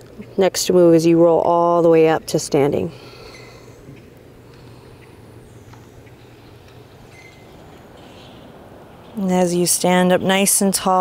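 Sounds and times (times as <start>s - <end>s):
faint bird chirps: 4.8s - 8.5s.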